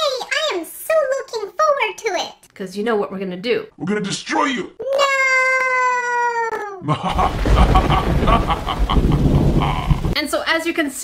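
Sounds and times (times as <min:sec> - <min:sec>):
rumbling thunder crash: 0:07.1 - 0:10.2.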